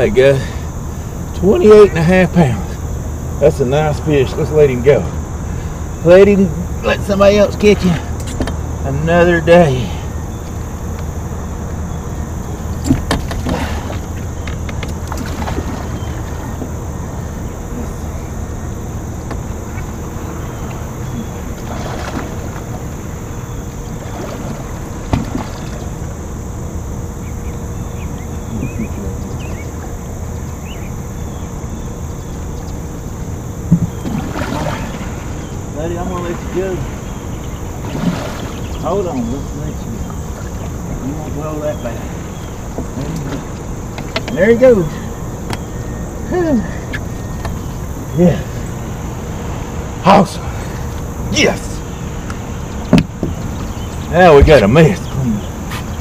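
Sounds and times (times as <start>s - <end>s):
steady low rumble: 0.0s - 56.0s
water lapping against a boat: 0.0s - 56.0s
sharp knocks on a boat: 8.0s - 8.6s, 12.8s - 16.8s, 24.1s - 26.0s, 33.6s - 34.8s, 42.4s - 44.4s, 45.4s - 45.7s, 52.2s - 54.7s.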